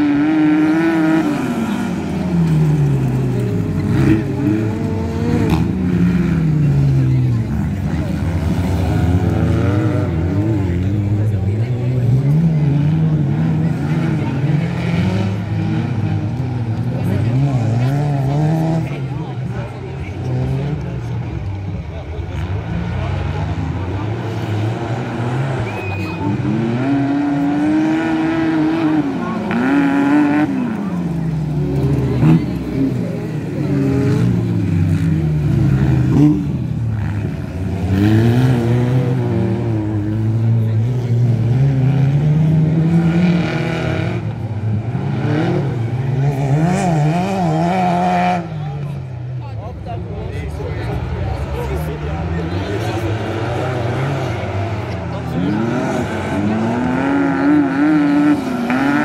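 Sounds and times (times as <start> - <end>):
buggy engines revving: 0.0 - 59.0.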